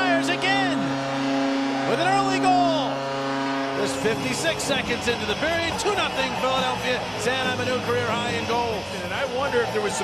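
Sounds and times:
goal horn low chord: 0.0s - 8.9s
crowd cheering and whooping: 0.0s - 10.0s.

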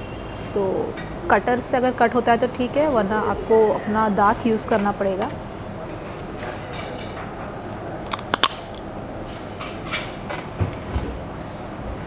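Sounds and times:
crab shell cracking: 8.0s - 8.9s.

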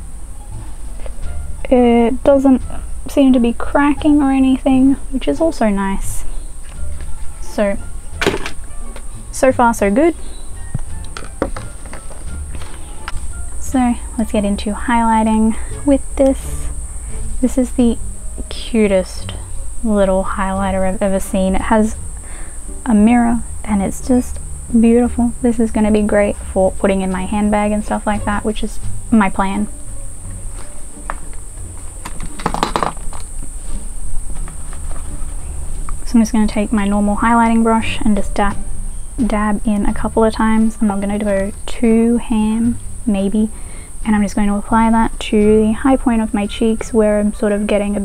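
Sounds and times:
high-pitched hiss: 0.0s - 48.0s
steady low hum: 0.0s - 48.0s
makeup items clicking and tapping: 8.2s - 9.1s, 10.8s - 13.2s, 32.0s - 33.3s.

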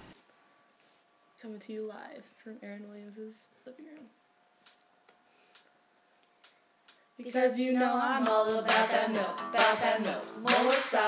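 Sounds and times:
faint irregular clicks: 4.6s - 7.9s.

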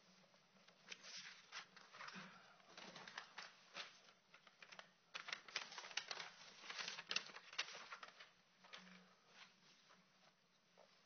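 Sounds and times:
small clicks and rustles: 0.6s - 11.0s.

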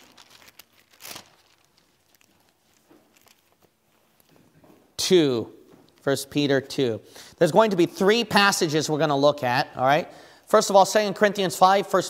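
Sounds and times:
thin pages rustling: 0.0s - 4.5s.

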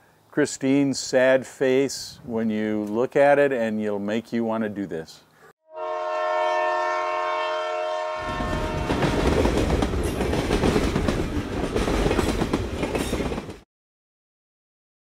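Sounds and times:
train horn: 5.6s - 9.4s
train clattering on rails: 8.2s - 13.6s.

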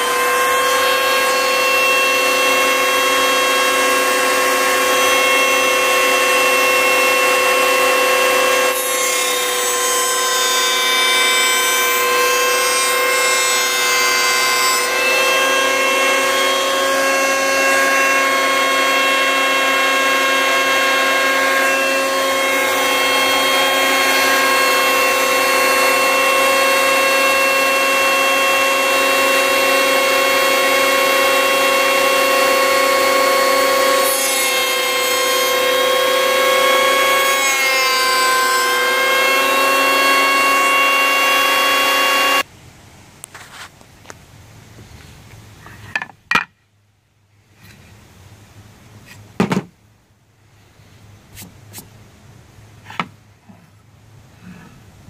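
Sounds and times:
electric planer whining: 0.0s - 42.5s.

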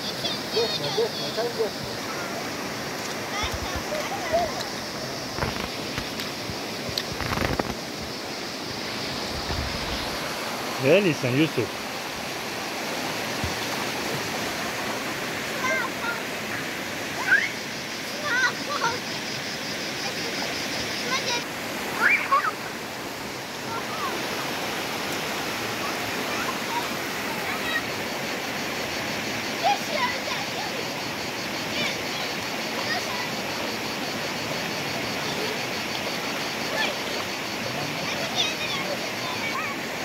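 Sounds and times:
river flowing: 0.0s - 40.0s
voices calling: 0.0s - 40.0s.

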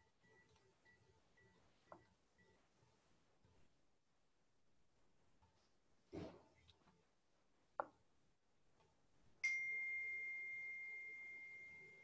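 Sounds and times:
high chime ringing: 9.4s - 12.0s.

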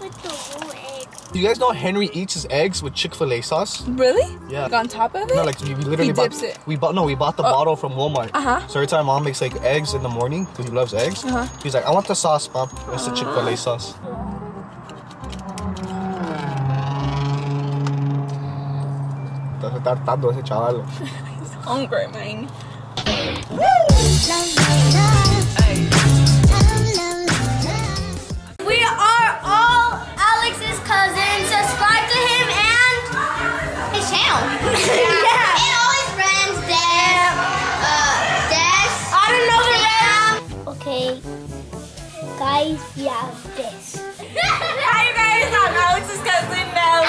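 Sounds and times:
deep droning low note: 15.3s - 20.9s.

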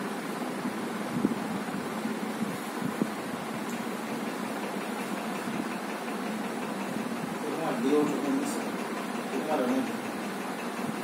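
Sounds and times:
electric fan running: 0.0s - 11.0s.

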